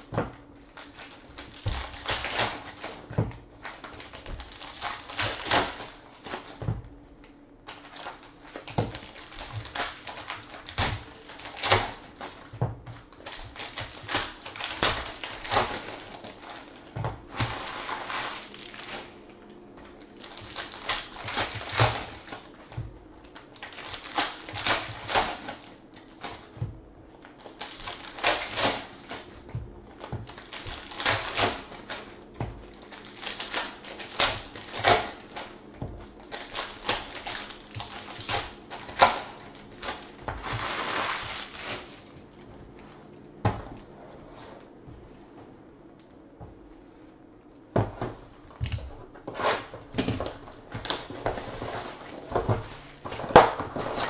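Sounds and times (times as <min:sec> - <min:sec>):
card pack wrappers crinkling and tearing: 0:00.0 - 0:06.6, 0:07.2 - 0:42.2.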